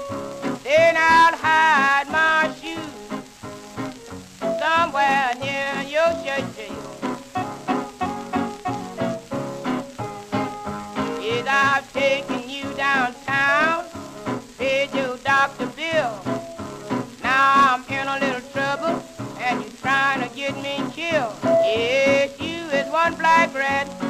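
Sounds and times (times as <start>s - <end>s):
blues record playing: 0.0s - 24.0s
record surface crackle: 0.0s - 24.0s.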